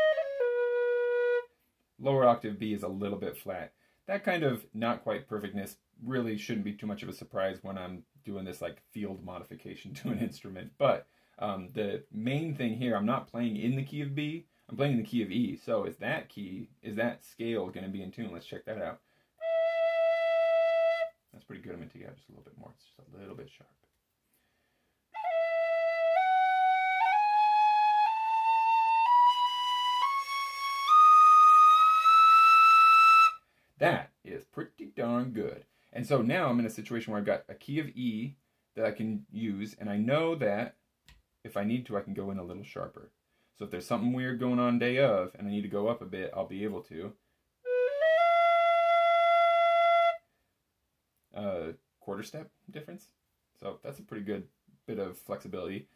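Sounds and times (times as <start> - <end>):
tin whistle playing a rising scale: 0.0 - 1.4, 25.2 - 33.4, 47.7 - 50.2.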